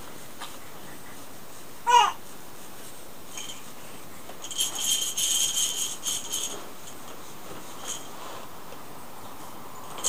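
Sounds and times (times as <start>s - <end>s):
small metal bell jingling: 3.3s - 3.7s, 4.4s - 8.2s.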